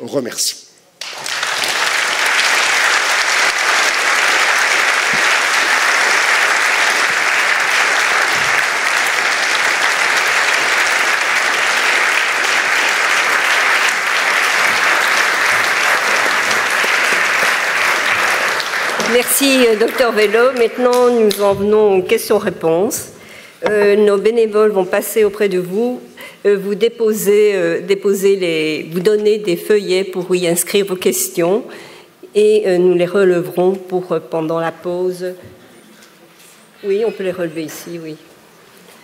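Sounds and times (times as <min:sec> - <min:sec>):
audience applauding: 0:01.0 - 0:21.5.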